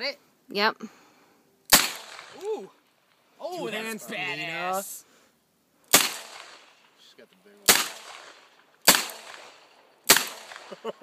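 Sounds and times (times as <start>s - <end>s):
handgun shots with echo: 1.7s - 2.4s, 5.9s - 6.6s, 7.7s - 9.5s, 10.1s - 10.7s.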